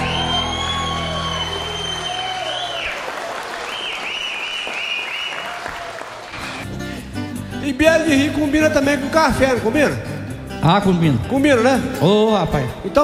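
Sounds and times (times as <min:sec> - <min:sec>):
high wavering whistles: 0:00.0 - 0:02.9
audience applauding: 0:00.0 - 0:06.6.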